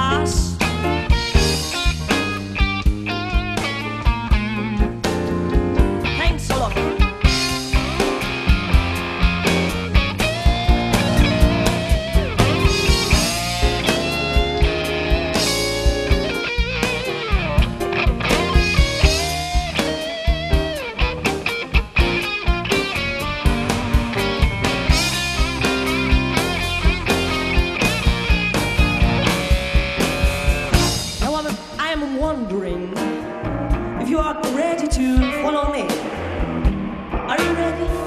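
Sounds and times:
band playing instrumental: 0.0 - 38.0
drum kit beat: 0.0 - 38.0
electric guitar: 0.0 - 38.0.

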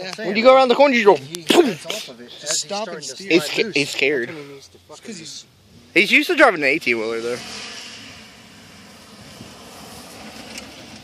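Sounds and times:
distant truck engine and tyres: 5.6 - 11.0.

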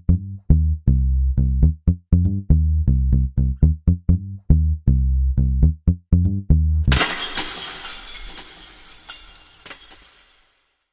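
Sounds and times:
glass shattering: 6.9 - 10.9.

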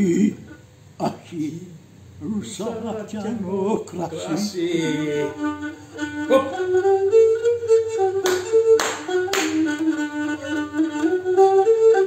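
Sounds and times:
lyra playing a melody: 2.8 - 12.0
hand clapping: 8.2 - 9.7.

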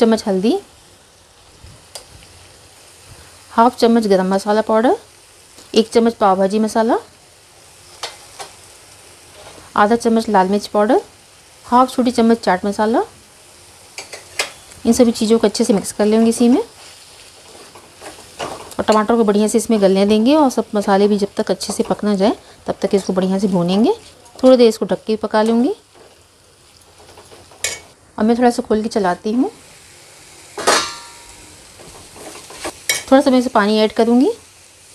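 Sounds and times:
masala sizzling in a pan: 0.0 - 34.9
metal lid clinking on pan: 30.6 - 31.3.

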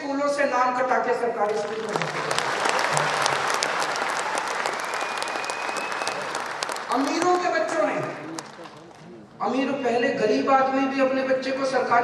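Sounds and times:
audience applauding: 1.5 - 9.4.

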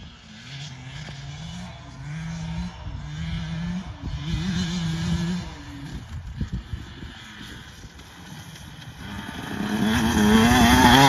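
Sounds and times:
dirt bike engine accelerating: 0.0 - 11.0.

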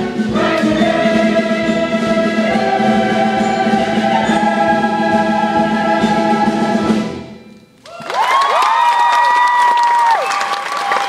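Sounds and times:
large chorus singing: 0.0 - 7.4.

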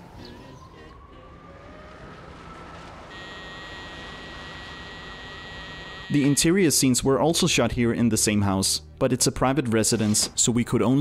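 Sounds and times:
steady high-pitched tone: 3.1 - 6.5.

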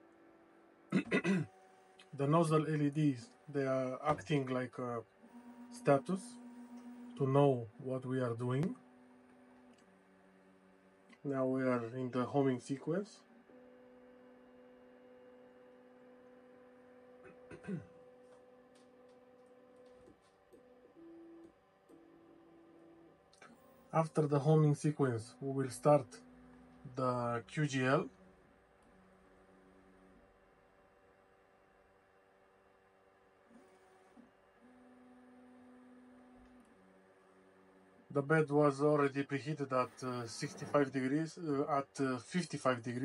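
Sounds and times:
stepper motor tones: 0.0 - 30.4, 33.5 - 43.0
low constant hum: 0.0 - 43.0
stepper motors whining: 2.0 - 12.8.

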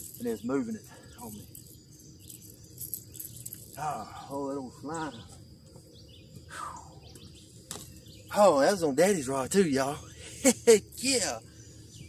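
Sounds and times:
faint outdoor ambience: 0.0 - 12.0.

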